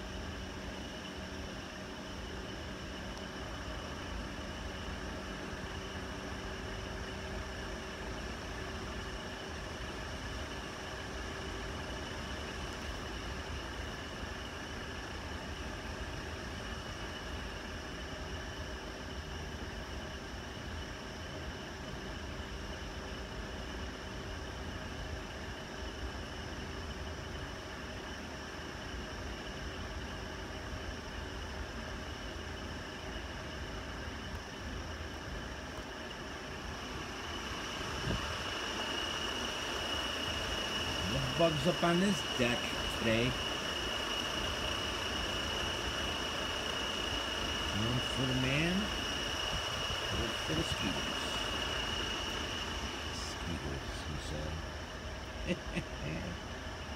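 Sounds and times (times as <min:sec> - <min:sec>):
metal drum fan running: 0:00.0 - 0:56.9.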